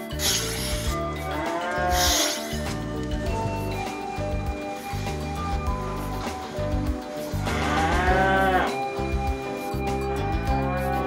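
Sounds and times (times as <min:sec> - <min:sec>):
background music: 0:00.0 - 0:11.0
cow mooing: 0:01.0 - 0:02.6, 0:07.4 - 0:08.9, 0:10.4 - 0:11.0.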